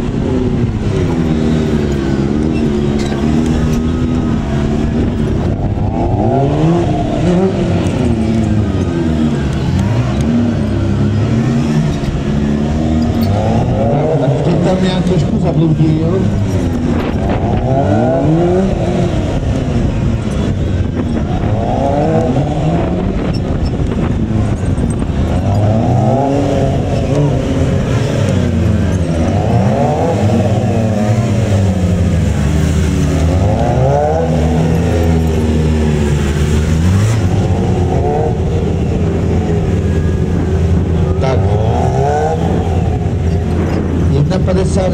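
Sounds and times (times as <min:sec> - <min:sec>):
motorcycle engine revving: 0:00.0 - 0:44.9.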